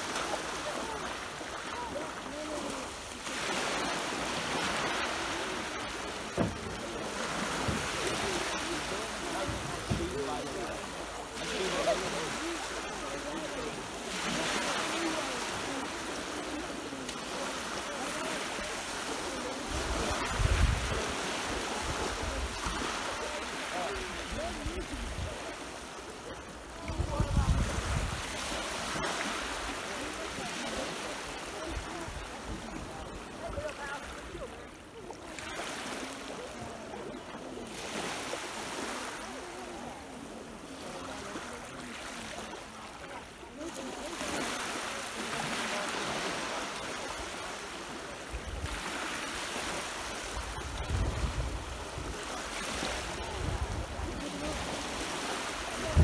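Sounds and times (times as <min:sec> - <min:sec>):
small waves breaking on shore: 0:00.0 - 0:56.0.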